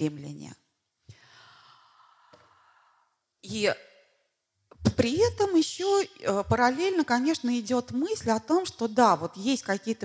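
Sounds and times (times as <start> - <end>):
breath into microphone: 1.0 - 3.2.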